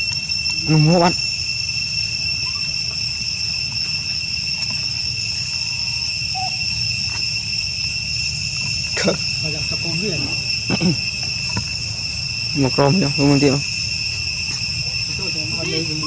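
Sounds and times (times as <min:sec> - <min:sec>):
high-pitched insect drone: 0:00.0 - 0:16.0.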